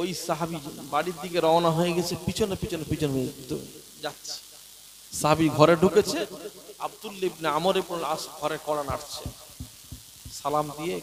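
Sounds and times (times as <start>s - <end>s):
man chanting a sermon: 0.0s - 4.4s, 5.1s - 9.5s, 10.3s - 11.0s
soft thumps on microphone: 8.9s - 10.5s.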